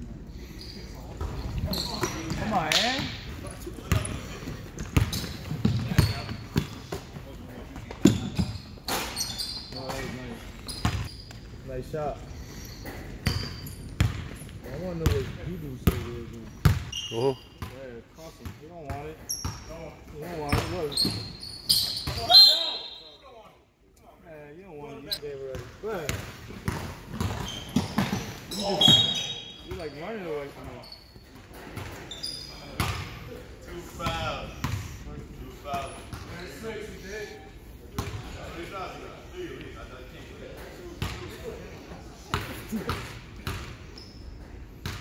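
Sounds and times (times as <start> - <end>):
sneakers squeaking on wooden floor: 0.4 - 11.6, 12.6 - 15.2, 15.9 - 17.8, 18.9 - 23.2, 26.1 - 33.2, 42.3 - 45.0
basketball bouncing: 4.8 - 6.8, 13.2 - 14.3, 26.1 - 28.2.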